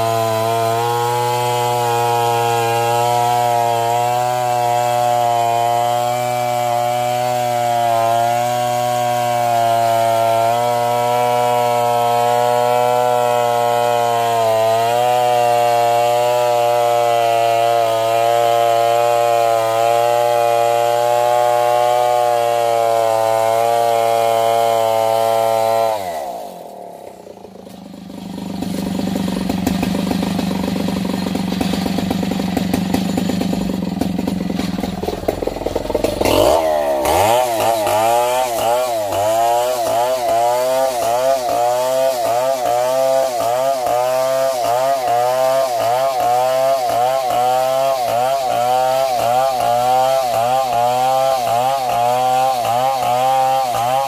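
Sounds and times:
chainsaw cutting log: 0.0s - 54.0s.

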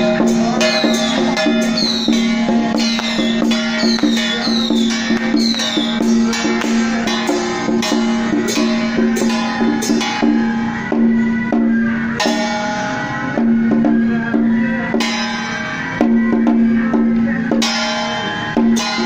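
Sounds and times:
drum and wood-block beat: 0.0s - 19.0s
held musical tone: 0.0s - 19.0s.

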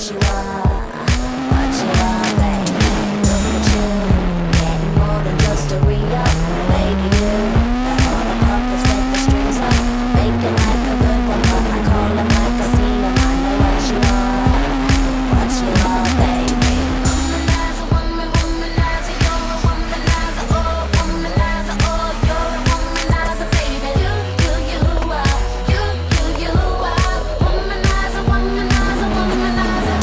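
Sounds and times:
pop music with steady beat: 0.0s - 30.0s
rally car engine revving: 0.0s - 30.0s.

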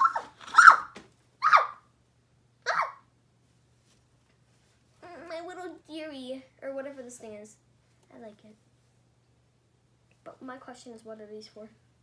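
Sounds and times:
girl's loud vocal exclamations: 2.7s - 3.0s.

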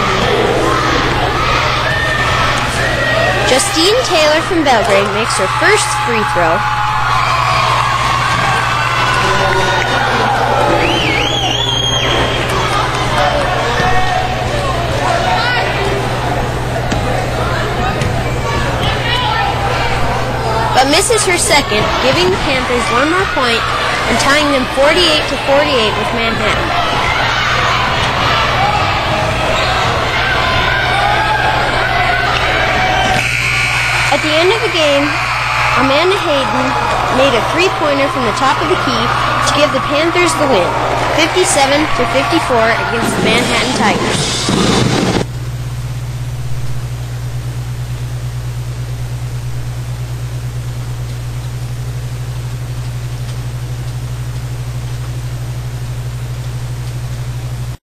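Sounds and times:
crowd shouting and cheering: 0.0s - 45.3s
steady low hum: 0.0s - 57.8s
even hiss: 42.9s - 45.3s.

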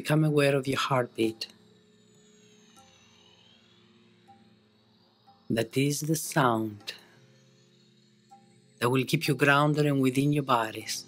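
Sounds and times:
faint ambient music: 0.0s - 11.0s.

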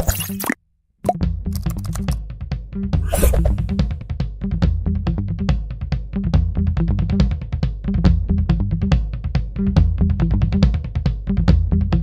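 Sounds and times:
swoosh transition effect: 3.0s - 3.8s.

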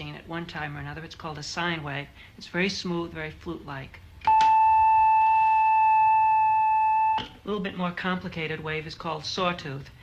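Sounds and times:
synthesizer sine tone: 4.3s - 7.4s.

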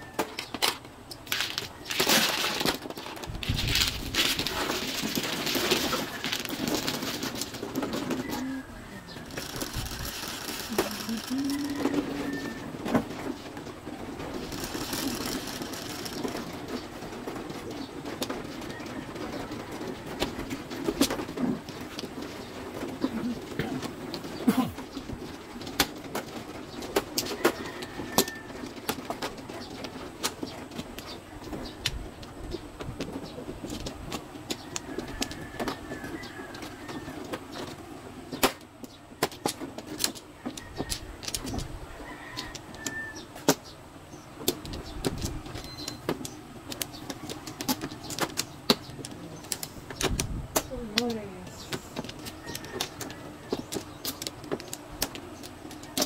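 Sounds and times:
plastic tiles clicking: 44.4s - 56.0s.

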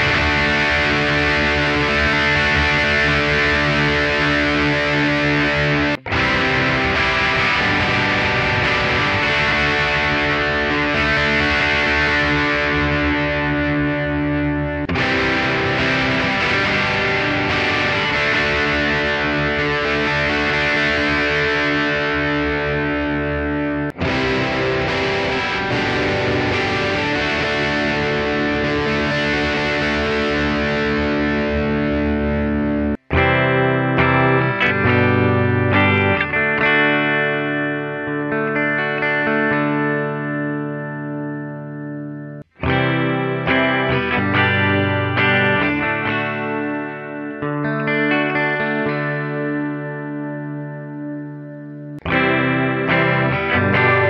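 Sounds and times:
clean electric guitar with chorus: 0.0s - 54.0s
distorted electric guitar: 0.0s - 54.0s.

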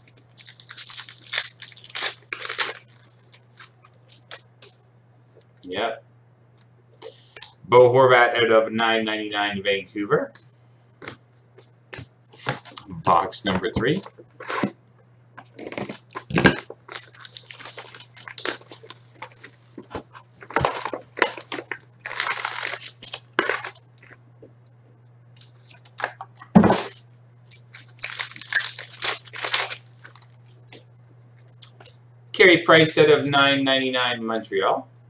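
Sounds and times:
plastic wrap rustling: 0.0s - 4.4s, 15.5s - 24.2s, 25.4s - 30.8s.

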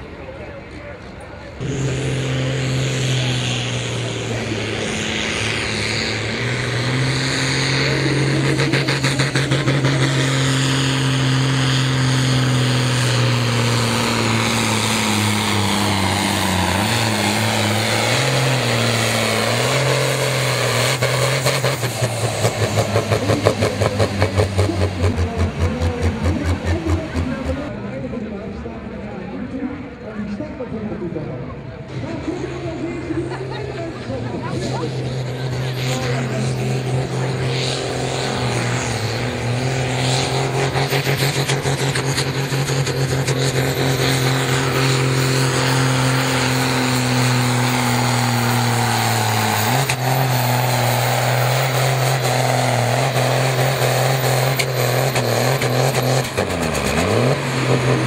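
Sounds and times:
tractor diesel engine at full throttle: 0.0s - 58.0s.

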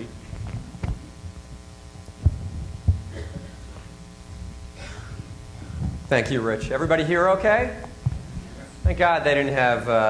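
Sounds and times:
electrical hum from speakers: 0.0s - 10.0s
dull thumps on microphone: 0.3s - 3.9s, 5.2s - 6.1s, 7.6s - 9.1s.

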